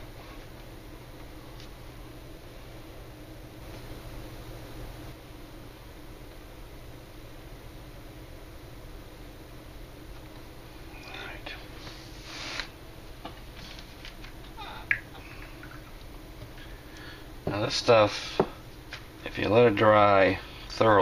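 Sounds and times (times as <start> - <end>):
low room hum: 0.0 - 21.0
soft hissy sounds: 9.8 - 21.0.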